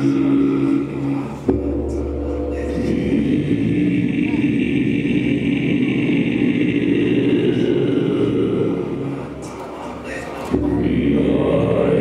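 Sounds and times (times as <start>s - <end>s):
dense steady drone: 0.0s - 12.0s
distorted voice chanting: 0.0s - 12.0s.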